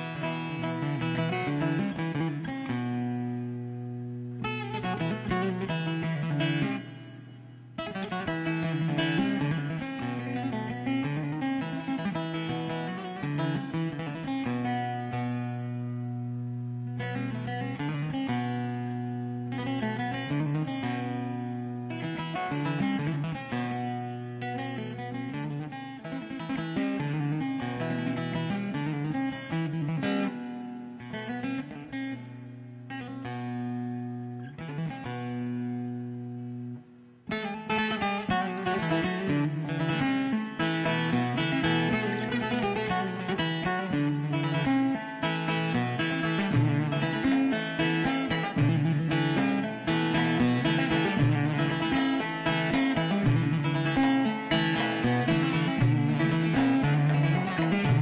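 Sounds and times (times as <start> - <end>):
long-necked lute plucked melody: 0.0 - 58.0
lute strumming: 0.0 - 58.0.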